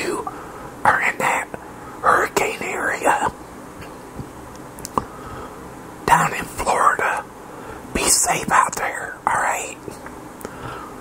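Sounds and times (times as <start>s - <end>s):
man whispering: 0.0s - 3.4s, 6.1s - 7.3s, 7.9s - 10.0s.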